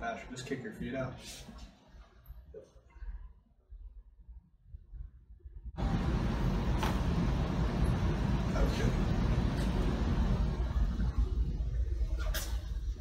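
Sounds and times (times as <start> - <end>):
low rumbling noise: 5.6 - 13.0.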